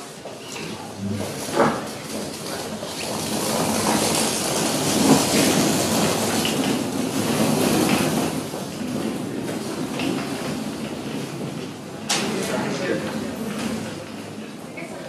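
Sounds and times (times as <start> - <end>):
dense rumbling with clattering: 0.9 - 14.4.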